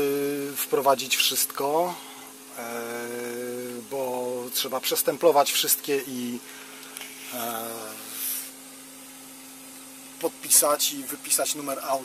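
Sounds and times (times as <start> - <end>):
short breathy hiss: 6.4 - 8.6.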